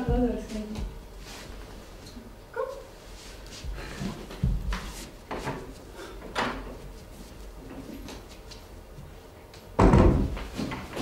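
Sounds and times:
wooden door thud: 9.8 - 10.5.

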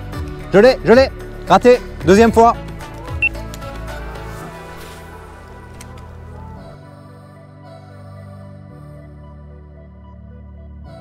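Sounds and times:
background music with held tones: 0.0 - 11.0
calm ambient music: 0.0 - 11.0.

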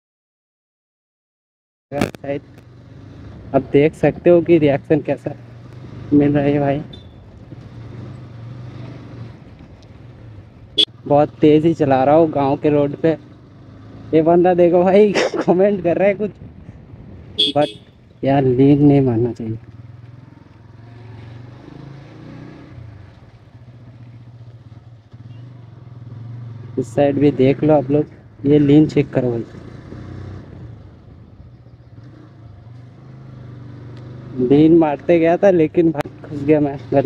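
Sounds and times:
motorcycle engine at speed: 2.0 - 15.0, 15.7 - 37.0
wind rushing over microphone: 15.7 - 17.4.

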